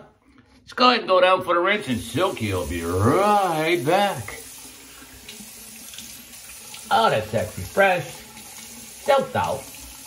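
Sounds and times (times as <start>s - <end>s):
sink tap running: 1.7s - 10.0s
water splashing: 2.0s - 10.0s.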